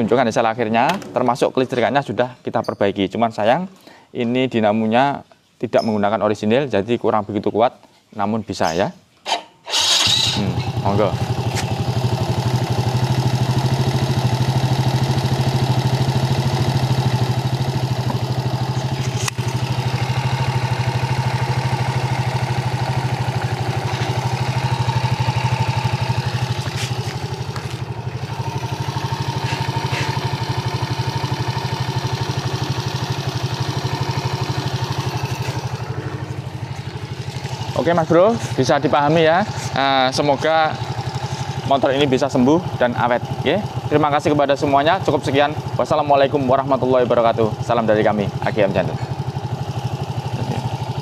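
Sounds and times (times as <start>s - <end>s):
motorcycle engine idling: 10.4s - 51.0s.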